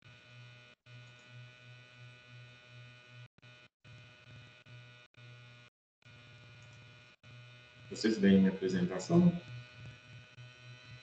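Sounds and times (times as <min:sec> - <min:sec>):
pulsing electrical hum: 0:00.0 - 0:11.0
thin steady whine: 0:00.0 - 0:11.0.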